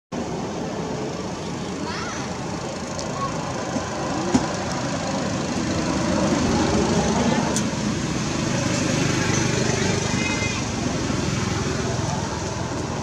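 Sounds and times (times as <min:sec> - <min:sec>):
steady outdoor rumble: 0:00.1 - 0:13.0.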